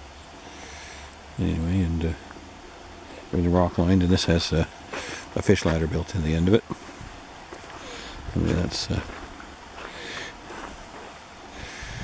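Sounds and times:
faint outdoor hiss: 0.0s - 12.0s
person breathing and sniffing: 4.9s - 5.4s, 7.8s - 8.3s, 9.8s - 10.8s, 11.5s - 12.0s.

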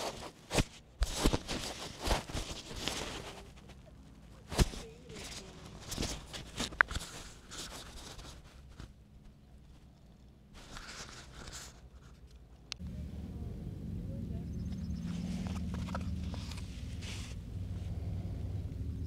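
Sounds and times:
rustling near microphone: 0.0s - 12.9s, 14.6s - 18.3s.

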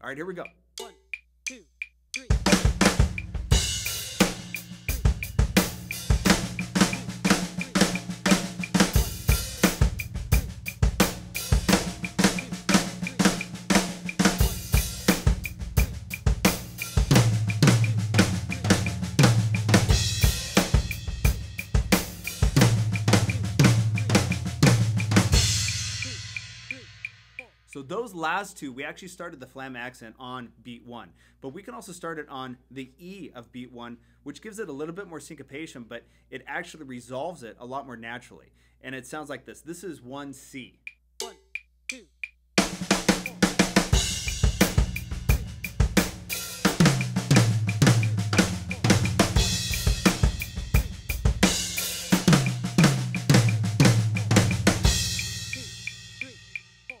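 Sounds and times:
drum fills on toms and snare: 0.4s - 27.9s, 40.9s - 57.0s
cymbals: 2.2s - 27.8s, 42.6s - 57.0s.

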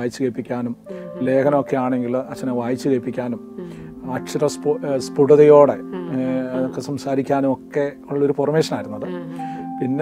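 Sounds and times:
person speaking: 0.0s - 10.0s
soft background music: 0.0s - 10.0s.

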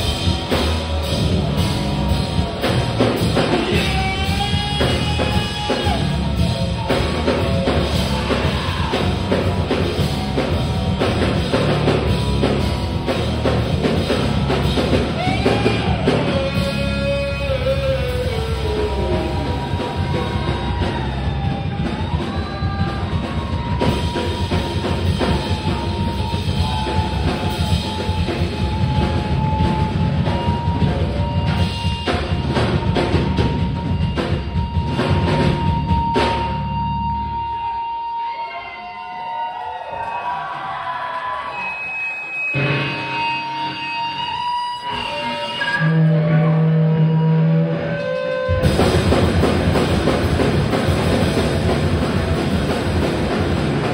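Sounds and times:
live rock band playing: 0.0s - 38.5s, 41.9s - 53.9s.

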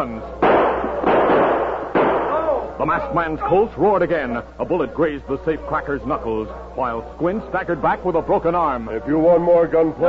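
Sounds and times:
revolver gunshots with ringing: 0.4s - 2.6s.

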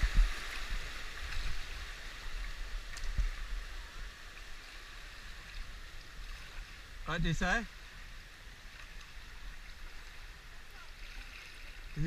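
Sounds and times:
river water moving: 0.0s - 12.0s.

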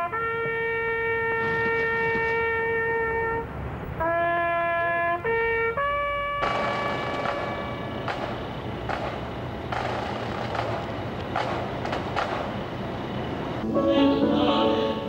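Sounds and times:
background hiss: 6.2s - 15.0s
knocks: 6.4s - 12.7s
choral singing: 13.6s - 15.0s.

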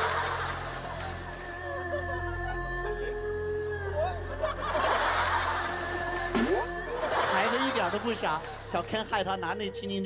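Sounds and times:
studio audience laughing: 0.0s - 1.4s, 4.2s - 8.9s
background music: 0.0s - 10.0s.

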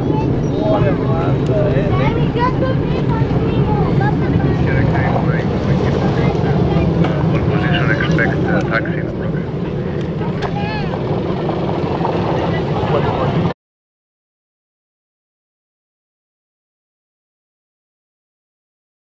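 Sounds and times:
spectators chatting: 0.0s - 13.5s
jet engines rumbling: 0.0s - 13.6s.

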